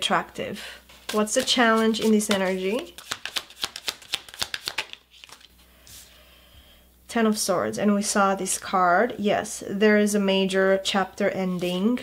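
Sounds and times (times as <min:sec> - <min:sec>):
cards being shuffled: 0:00.9 - 0:06.1.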